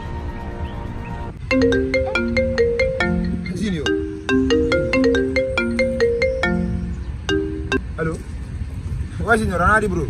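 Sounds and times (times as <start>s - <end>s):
marimba phone ringtone: 1.4s - 7.9s.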